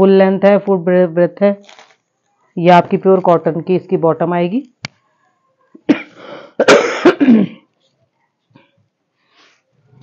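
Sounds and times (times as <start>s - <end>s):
person coughing: 5.8s - 7.7s.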